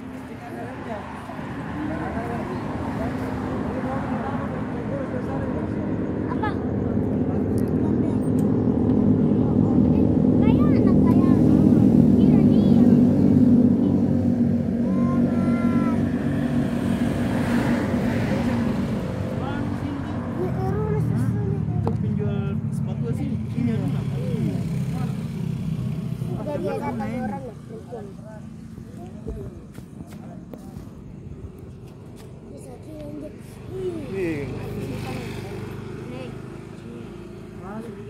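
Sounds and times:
people talking indistinctly: 0.0 - 38.0.

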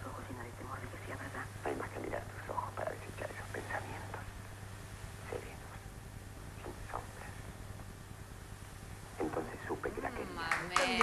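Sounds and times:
muffled film speech: 0.0 - 4.4, 5.2 - 5.8, 6.6 - 7.5, 9.2 - 11.0
low hum: 0.0 - 10.8.

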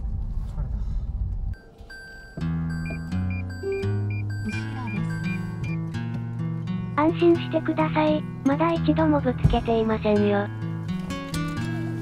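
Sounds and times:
parking sensor beeping: 1.6 - 5.9
acoustic guitar music: 2.4 - 12.0.

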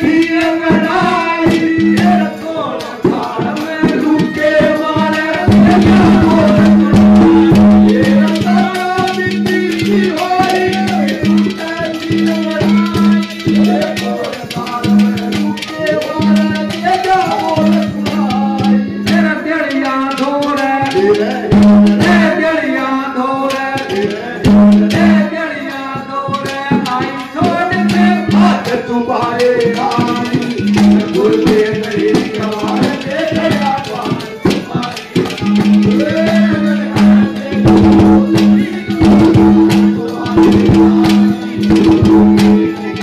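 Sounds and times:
drums: 0.0 - 43.0
man singing into a microphone: 0.0 - 43.0
rattling percussion: 0.0 - 43.0.

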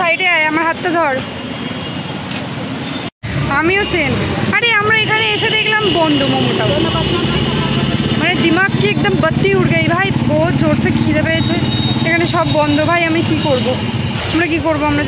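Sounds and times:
woman talking: 0.0 - 1.3, 3.5 - 15.0
street traffic noise: 0.0 - 15.0.

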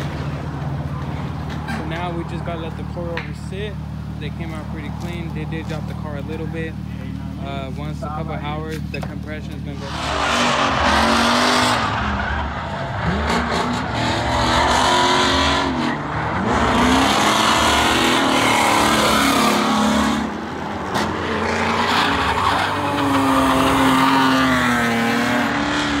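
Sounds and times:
car engines revving hard: 0.0 - 26.0
tyre squeal: 20.9 - 25.5.

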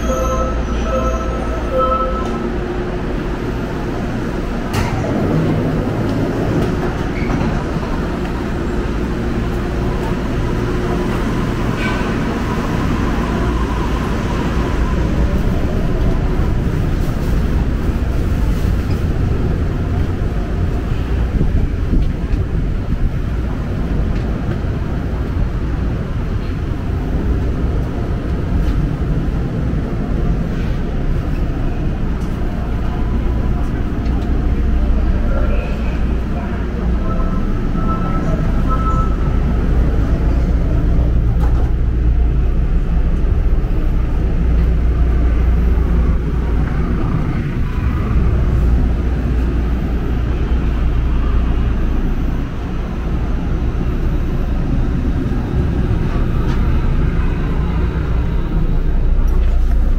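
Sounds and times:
monorail train low rumble: 0.0 - 59.9.

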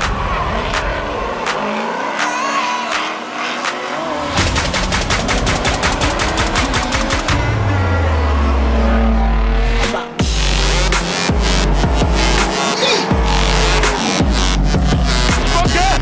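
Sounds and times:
car engines revving: 0.0 - 16.0
electronic music: 0.0 - 16.0
engine cracks: 2.9 - 7.8.

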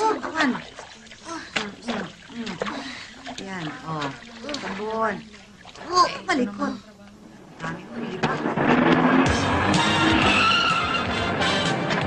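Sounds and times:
high wavering squeal: 9.4 - 11.1.

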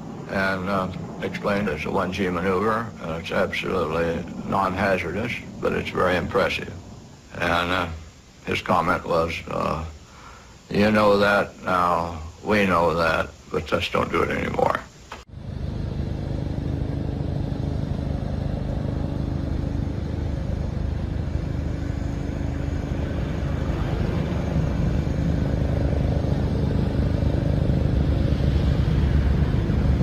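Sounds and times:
jet engines running: 0.0 - 30.0.

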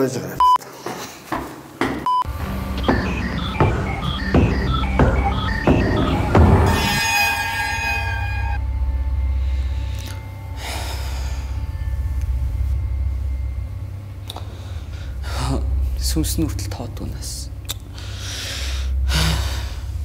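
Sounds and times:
high shimmering sting: 2.3 - 20.0
low heavy hit: 2.3 - 20.0
steady low drone: 2.3 - 20.0.

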